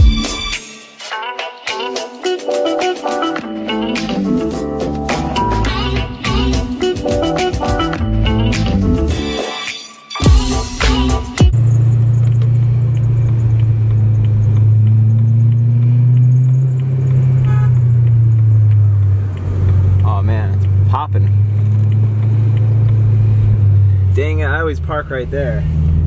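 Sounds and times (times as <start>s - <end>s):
road noise: 10.4s - 26.0s
car engine drone inside cabin: 11.5s - 26.0s.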